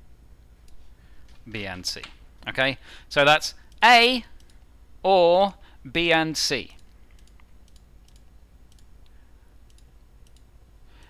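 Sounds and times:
low steady hum: 0.0s - 11.0s
computer mouse clicks: 4.4s - 4.7s, 6.7s - 11.0s.

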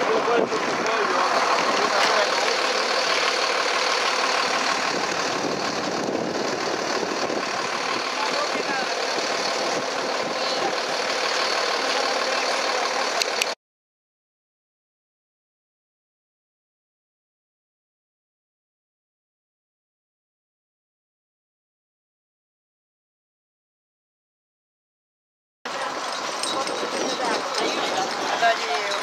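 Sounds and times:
outdoor background noise: 0.0s - 13.6s, 25.7s - 29.0s
faint indistinct voices: 25.7s - 29.0s.

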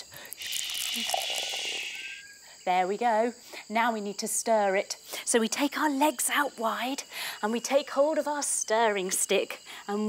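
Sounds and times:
milk pouring into a pot: 0.3s - 1.6s.

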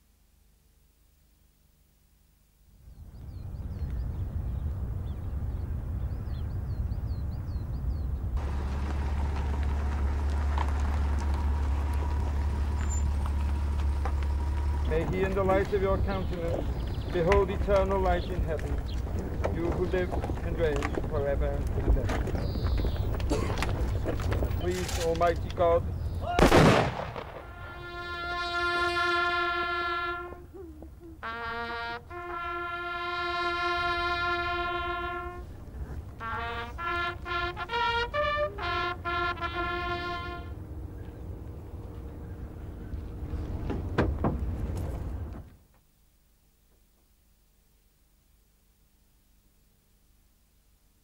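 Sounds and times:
vehicle driving past: 8.4s - 17.2s, 40.2s - 45.4s
bugles holding a long note: 26.2s - 35.6s, 36.2s - 42.5s.

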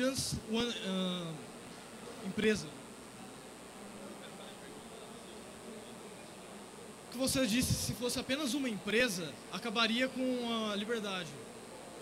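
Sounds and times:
faint steady hiss: 0.0s - 12.0s
high-pitched whine: 0.0s - 12.0s.

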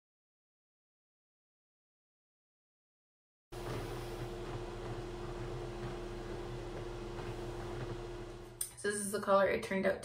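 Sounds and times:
fan motor humming: 3.6s - 8.8s.

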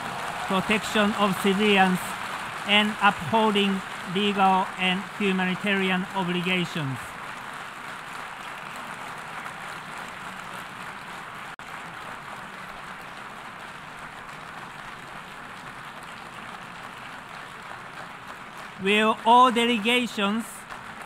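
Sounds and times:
assembly hall background noise: 0.0s - 21.0s.

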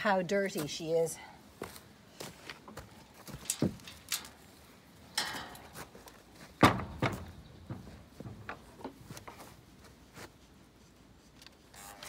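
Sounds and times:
loud thump: 6.6s - 8.6s
knocks and thuds: 6.6s - 9.0s.

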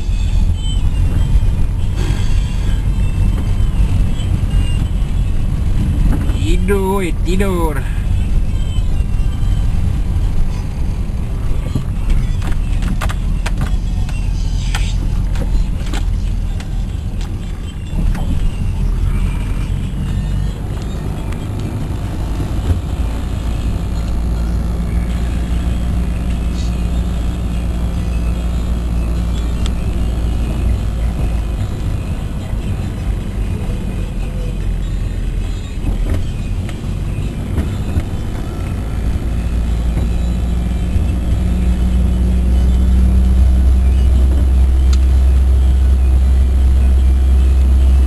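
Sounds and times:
car engine and tyre rumble: 0.0s - 48.0s.

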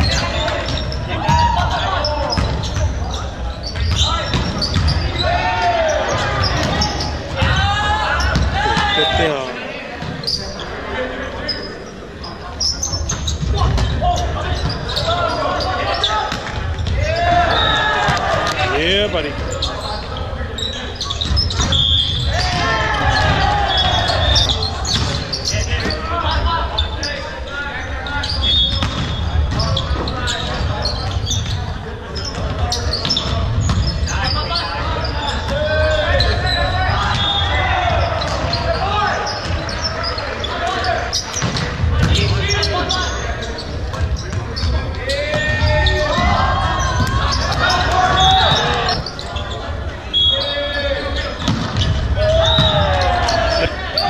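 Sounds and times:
shoe squeaks: 0.0s - 9.4s, 10.0s - 54.0s
people shouting in a gym: 0.0s - 54.0s.

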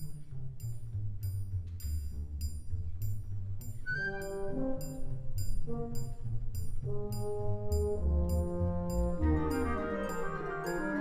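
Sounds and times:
light high ticks: 0.0s - 3.9s, 4.8s - 11.0s
orchestra playing: 3.9s - 11.0s.

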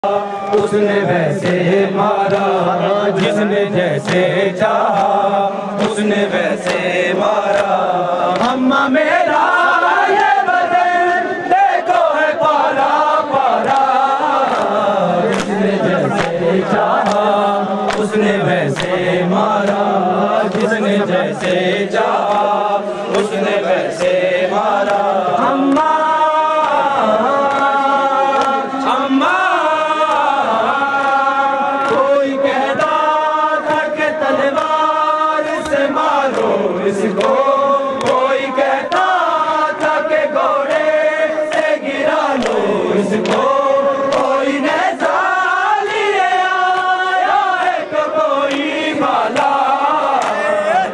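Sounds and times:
men chanting a lament: 0.0s - 50.9s
chest-beating slaps: 3.2s - 5.2s, 5.8s - 8.6s, 14.5s - 19.0s, 35.5s - 39.2s.

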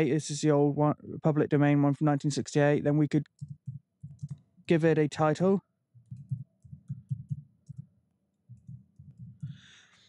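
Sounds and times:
typing on computer keyboard: 3.3s - 4.5s, 6.0s - 9.6s.

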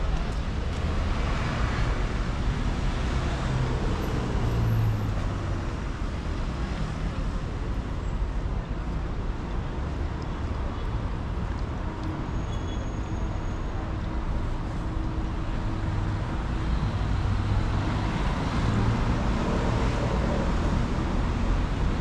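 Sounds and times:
traffic rumble: 0.0s - 22.0s.

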